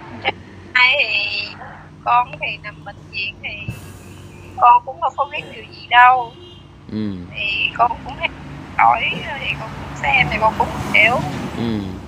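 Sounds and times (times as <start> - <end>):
low hum: 0.0 - 11.3
woman speaking through phone speaker: 0.1 - 3.7, 4.6 - 6.3, 7.4 - 11.4.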